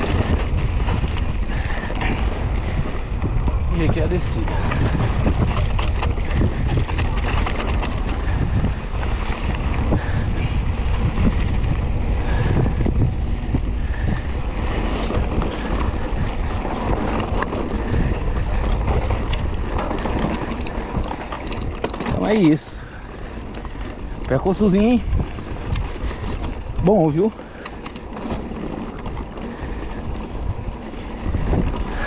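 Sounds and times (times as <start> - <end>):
bike rattling over bumps: 0.0 - 32.0
tyres on loose dirt: 0.0 - 32.0
wind buffeting microphone: 0.0 - 32.0.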